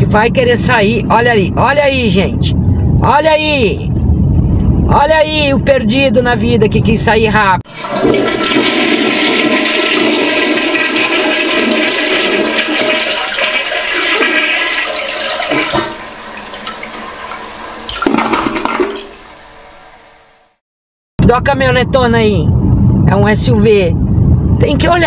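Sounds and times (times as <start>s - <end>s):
water rushing: 7.7s - 20.6s.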